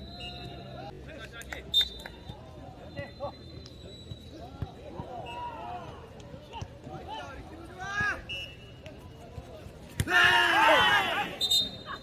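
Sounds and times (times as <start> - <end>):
ball kicked and bouncing: 4.0 - 7.1, 8.8 - 10.4.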